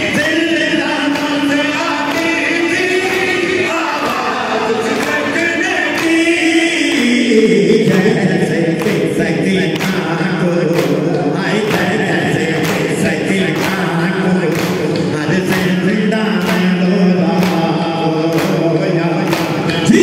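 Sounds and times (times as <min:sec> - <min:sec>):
men singing together: 0:00.0 - 0:20.0
hands slapping chests: 0:09.7 - 0:10.1, 0:10.7 - 0:12.0, 0:12.6 - 0:13.9, 0:14.5 - 0:15.6.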